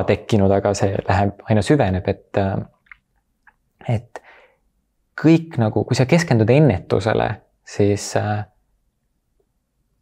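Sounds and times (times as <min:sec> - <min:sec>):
person speaking: 0:00.0 - 0:04.4.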